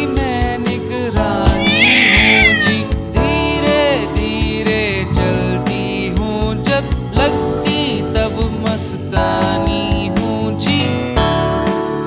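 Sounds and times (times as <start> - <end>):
nursery rhyme backing music: 0.0 - 12.0
cartoon cat meow: 1.5 - 2.8.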